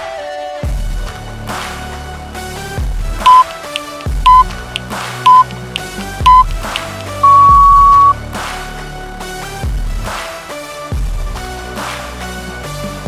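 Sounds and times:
background music: 0.0 - 13.0
timer beeps: 3.2 - 3.5, 4.3 - 4.5, 5.3 - 6.4, 7.2 - 8.2.

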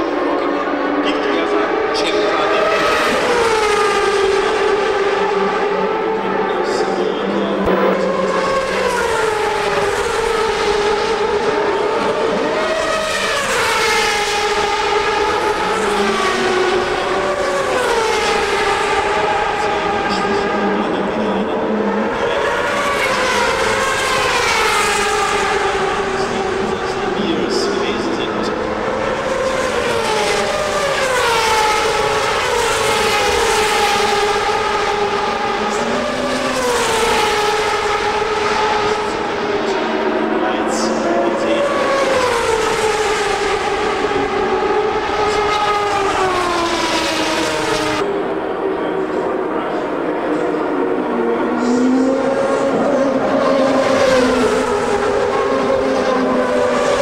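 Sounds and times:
racing cars passing at speed: 0.0 - 57.0.

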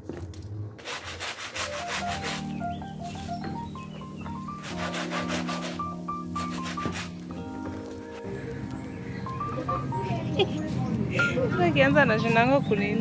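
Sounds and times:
brush scrubbing wet shoe: 0.8 - 2.5, 4.6 - 5.8, 6.4 - 7.2
instrumental background music: 1.0 - 13.0.

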